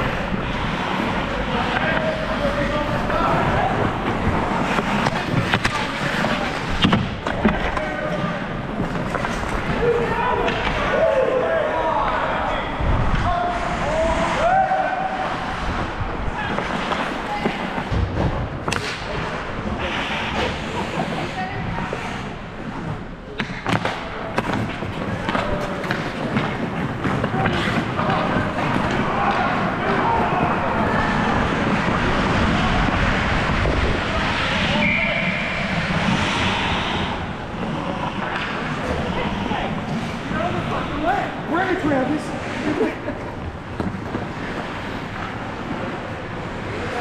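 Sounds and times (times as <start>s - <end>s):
skate blades on ice: 0.0s - 11.3s, 13.8s - 18.0s, 18.6s - 42.8s
indistinct players' voices: 0.0s - 47.0s
hockey sticks clacking on puck: 0.5s - 11.3s, 16.4s - 18.0s, 18.6s - 19.2s, 23.4s - 34.6s, 35.7s - 41.9s.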